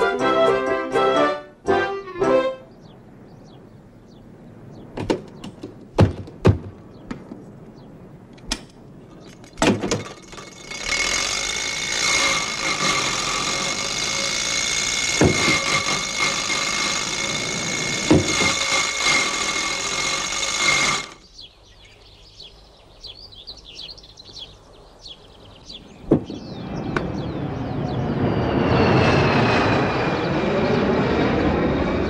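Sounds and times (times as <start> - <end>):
knocks: 5.0 - 7.3, 15.1 - 16.3, 18.1 - 18.6.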